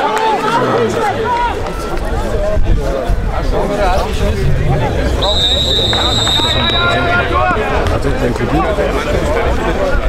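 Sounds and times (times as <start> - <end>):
crowd shouting: 0.0 - 2.4, 3.6 - 9.4
low rumble: 3.2 - 9.3.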